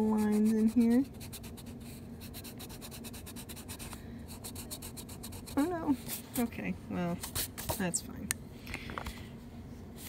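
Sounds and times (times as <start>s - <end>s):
eraser rubbing on paper: 0.0s - 6.2s.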